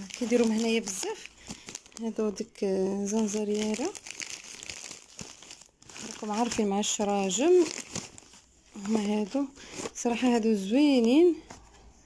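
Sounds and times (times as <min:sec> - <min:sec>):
packaging crinkling and rustling: 0:00.0 - 0:11.6.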